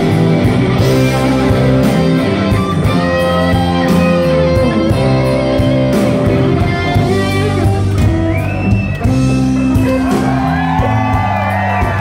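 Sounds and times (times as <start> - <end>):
loud electric guitars: 0.0 - 12.0.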